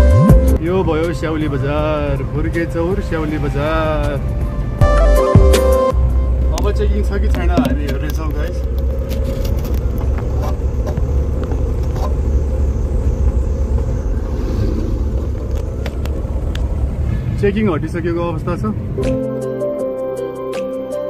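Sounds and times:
car engine rumble: 0:00.0 - 0:19.3
road noise: 0:00.0 - 0:20.8.

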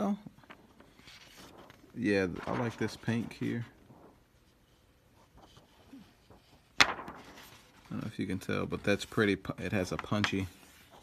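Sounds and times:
plastic film sheet rustling: 0:00.4 - 0:04.7, 0:05.3 - 0:11.0
plastic film sheet snapping: 0:06.7 - 0:07.4.

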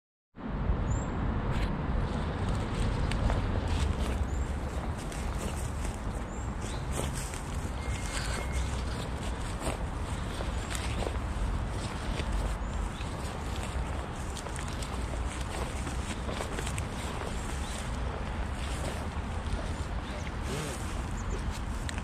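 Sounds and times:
footsteps through grass: 0:02.0 - 0:22.0.

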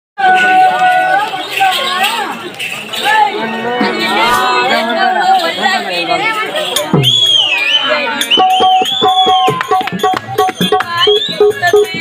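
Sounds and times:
mridangam drum strokes: 0:08.2 - 0:12.0.

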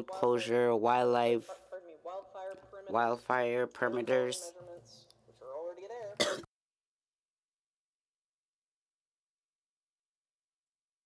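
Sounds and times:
person speaking: 0:00.0 - 0:06.2
throat clearing: 0:06.2 - 0:06.5.

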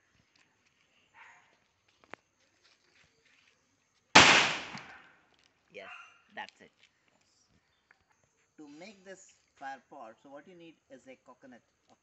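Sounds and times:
firecracker bang: 0:04.2 - 0:05.1.

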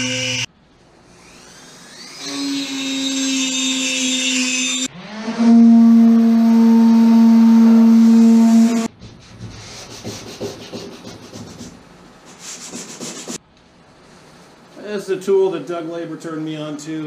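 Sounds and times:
electric drill grinding: 0:00.0 - 0:00.5, 0:01.1 - 0:05.7.

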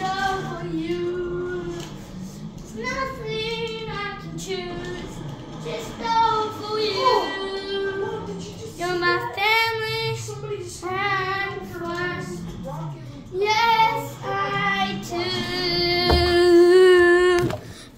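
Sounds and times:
child singing wordless tune: 0:00.0 - 0:17.5.

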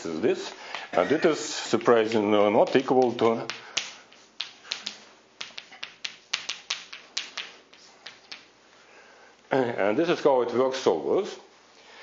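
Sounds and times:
chalk tapping on blackboard: 0:01.8 - 0:08.5.

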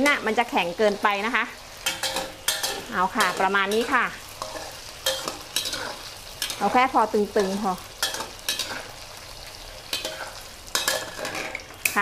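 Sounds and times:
tofu sizzling in oil: 0:00.0 - 0:12.0
metal ladle scraping wok: 0:01.6 - 0:12.0.

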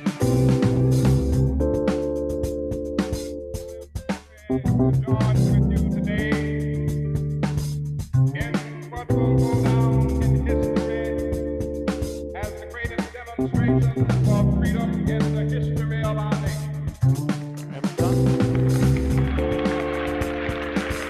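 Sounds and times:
bass line: 0:00.0 - 0:21.0.

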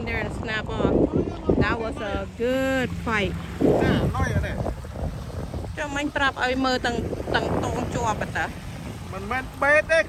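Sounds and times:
waves washing onto rocky shore: 0:00.0 - 0:10.0
wind buffeting microphone: 0:00.0 - 0:10.0.

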